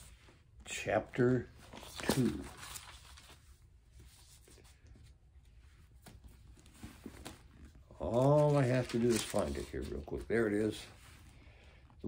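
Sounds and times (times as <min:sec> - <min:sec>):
pages being turned: 0:01.6 - 0:04.9, 0:05.9 - 0:10.8.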